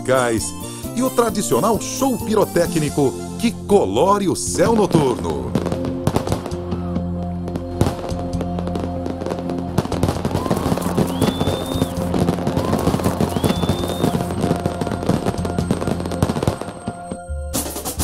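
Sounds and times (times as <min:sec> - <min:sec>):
background music: 0:00.0 - 0:18.0
fireworks popping and crackling: 0:04.7 - 0:18.0
rising firework whistles: 0:09.1 - 0:17.0.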